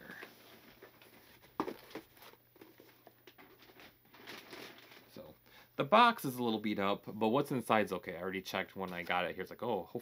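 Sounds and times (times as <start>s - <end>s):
plastic bag rustling: 0.1s - 5.3s.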